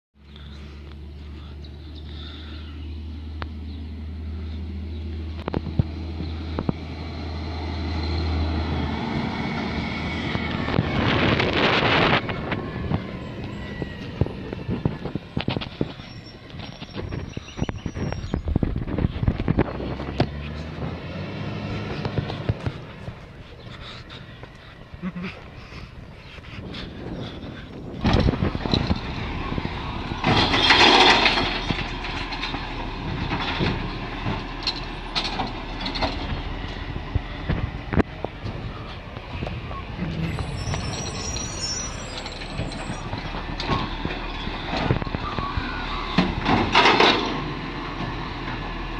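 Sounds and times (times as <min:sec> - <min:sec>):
heavy vehicle engine humming: 0:00.2 - 0:48.9.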